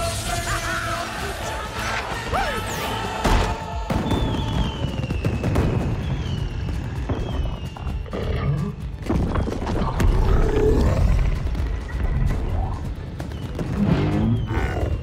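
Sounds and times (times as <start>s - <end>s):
film music: 0.0s - 15.0s.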